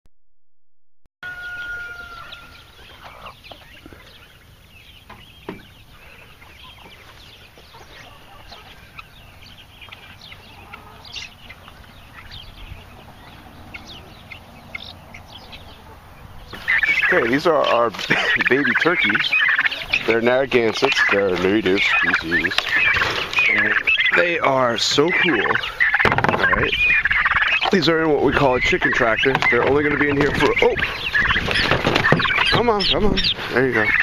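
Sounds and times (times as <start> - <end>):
poultry peeping and clucking: 1.2 - 34.0.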